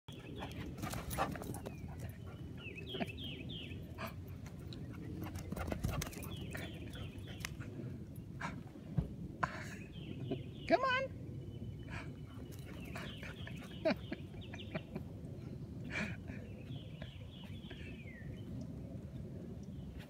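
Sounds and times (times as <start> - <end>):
low rumble of movement: 0.1 - 20.0.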